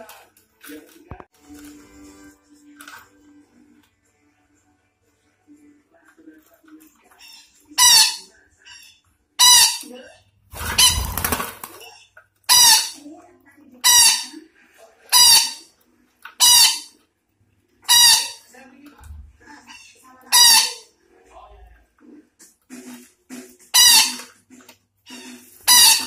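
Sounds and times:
parakeet chatter: 0:07.1 - 0:10.0, 0:10.6 - 0:13.1, 0:19.5 - 0:21.0, 0:25.1 - 0:26.0
parakeet screeching: 0:07.2 - 0:09.9, 0:10.6 - 0:11.6, 0:12.5 - 0:13.0, 0:13.8 - 0:14.4, 0:15.1 - 0:15.7, 0:16.4 - 0:17.0, 0:17.8 - 0:18.5, 0:19.7 - 0:20.9, 0:23.7 - 0:24.3, 0:25.1 - 0:26.0.

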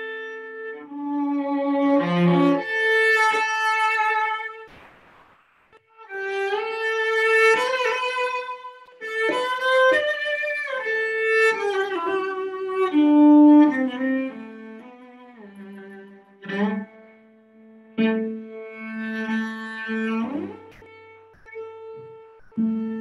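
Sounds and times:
bowed cello melody: 0:00.0 - 0:04.7, 0:05.9 - 0:23.0.

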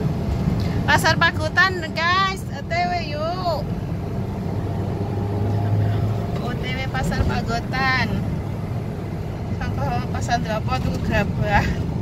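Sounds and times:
car engine hum: 0:00.0 - 0:12.0
road noise rush: 0:00.0 - 0:12.0.

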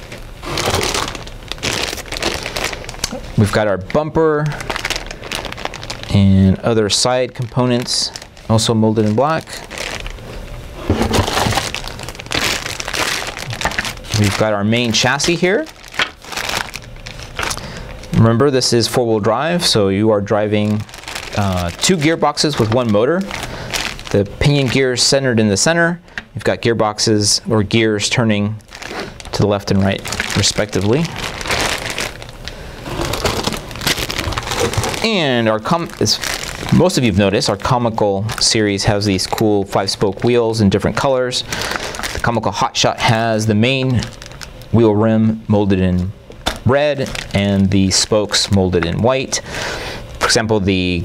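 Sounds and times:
plastic bag crinkling: 0:00.0 - 0:27.0, 0:27.7 - 0:44.9, 0:46.3 - 0:50.4
plastic parts knocking: 0:15.9 - 0:16.2.

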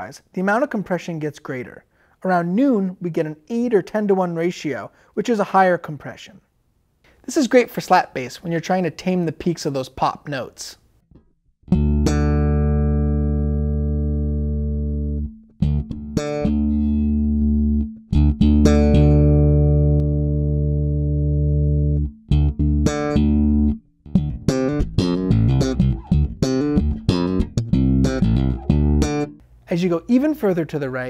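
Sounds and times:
compressed electric bass notes: 0:11.7 - 0:29.4.

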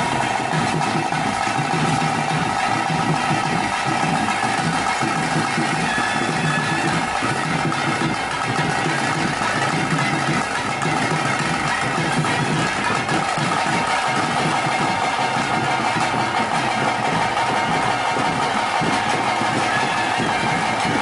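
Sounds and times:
drums playing dense beat: 0:00.0 - 0:21.0.

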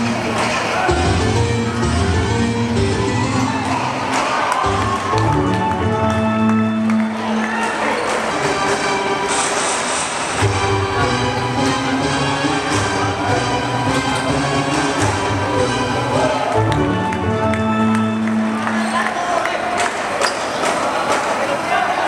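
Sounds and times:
background music with bass line: 0:00.9 - 0:03.7, 0:04.7 - 0:07.0, 0:10.4 - 0:18.5.

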